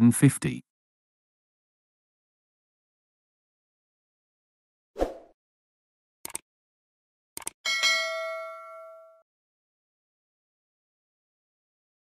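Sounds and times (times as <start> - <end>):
notification bell ding: 7.7 - 9.2.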